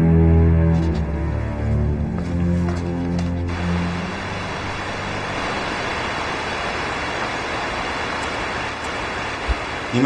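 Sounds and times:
outdoor ambience rushing noise: 0.6 - 10.0.

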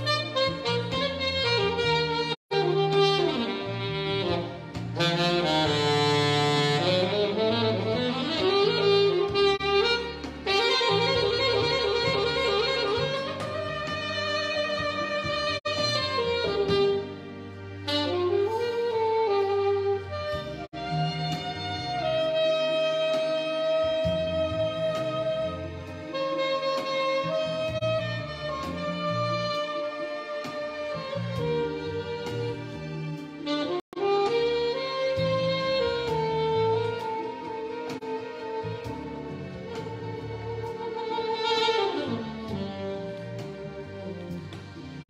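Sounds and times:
alto saxophone jazz melody: 0.0 - 45.0
backing track with bass line: 0.0 - 45.0.

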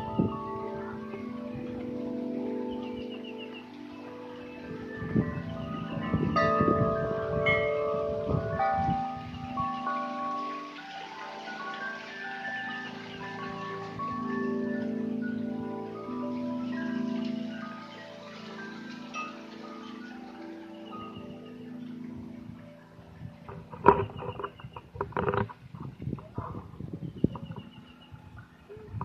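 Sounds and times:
wind chimes ringing: 0.0 - 29.0.

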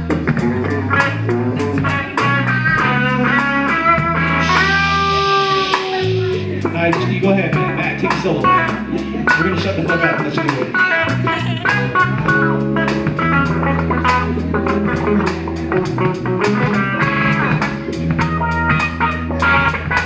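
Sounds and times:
bass guitar: 0.0 - 20.0
drum kit with cymbals: 0.0 - 20.0
electric guitar: 0.0 - 20.0.

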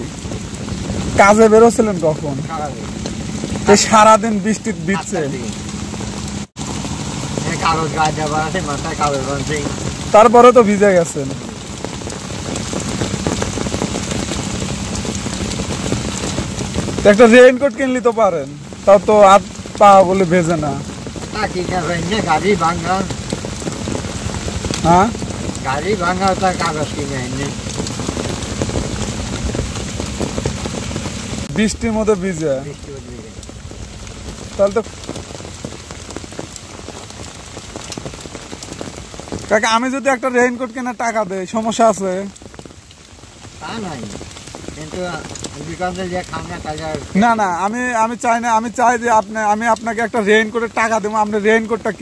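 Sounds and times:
steady rain falling: 0.0 - 52.0.

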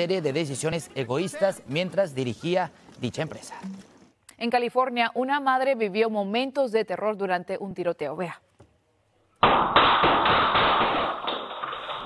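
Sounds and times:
rapid gunfire: 9.4 - 12.0.

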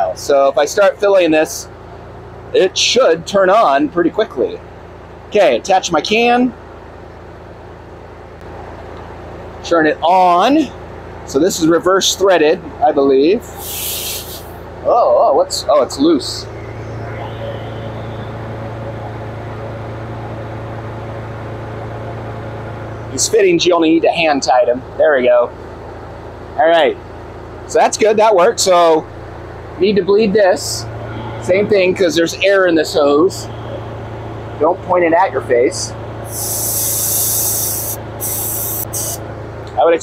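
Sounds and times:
car engine idling: 0.0 - 40.0
faint hiss: 13.6 - 14.6, 36.3 - 39.2.

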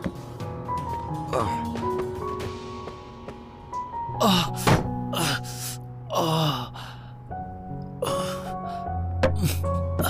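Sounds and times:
background music: 0.0 - 10.0
man crying out in pain: 4.2 - 6.8.

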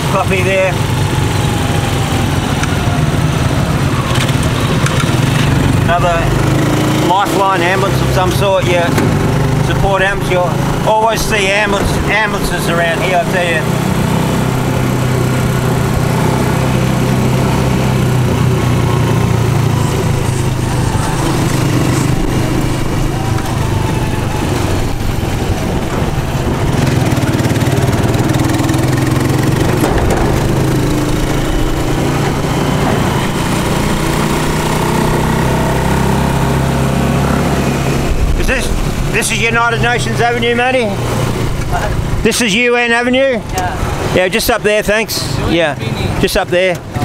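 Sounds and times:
motorcycle engine running: 0.0 - 47.0
road noise: 0.0 - 47.0.

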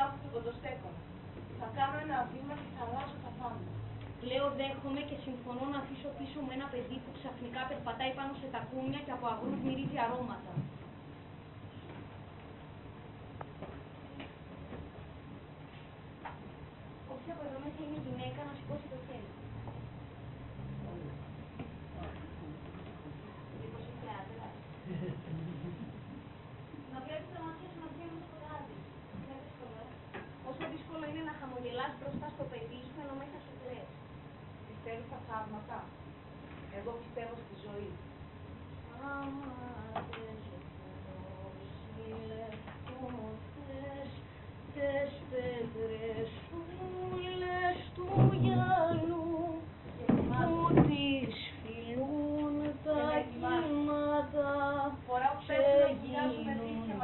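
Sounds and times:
low room hum: 0.0 - 57.0
woman singing long notes: 44.8 - 57.0.

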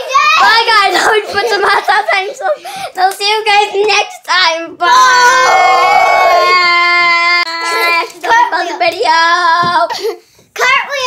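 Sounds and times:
boy singing long notes: 4.8 - 9.9.

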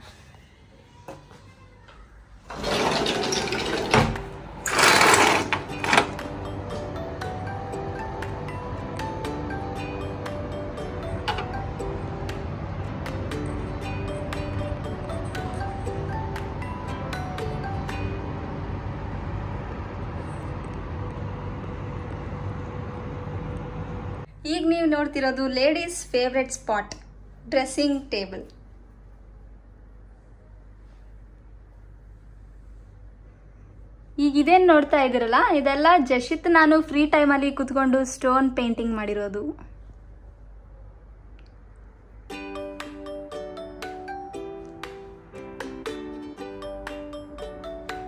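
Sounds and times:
sliding window rattling scrape: 2.5 - 5.9
city ambience rumble: 6.2 - 42.3
faint steady hum: 6.2 - 48.0.

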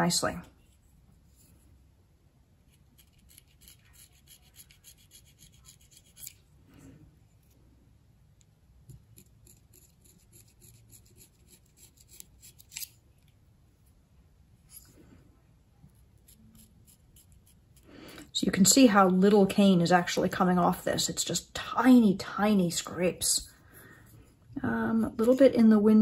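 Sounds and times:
knife scraping reed cane: 3.0 - 6.4, 9.5 - 12.9.

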